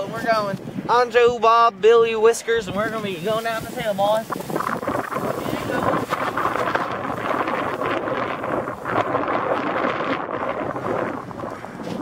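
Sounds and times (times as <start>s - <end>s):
wind buffeting microphone: 0.0s - 12.0s
sled scraping over frosty grass: 2.2s - 12.0s.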